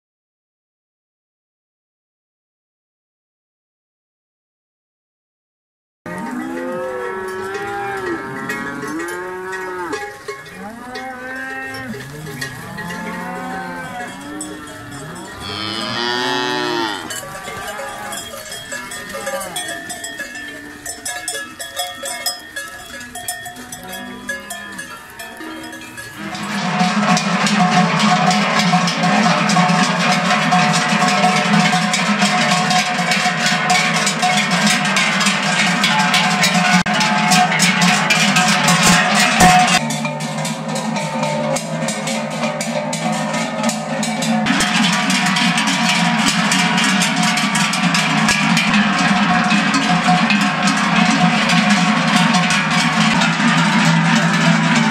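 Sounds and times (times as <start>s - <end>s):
cattle mooing: 6.1s - 18.4s
cowbells clanging: 6.1s - 54.9s.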